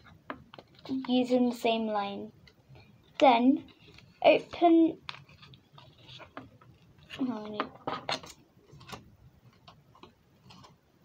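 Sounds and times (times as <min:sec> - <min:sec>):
paper crinkling and clicking: 0:03.7 - 0:10.8.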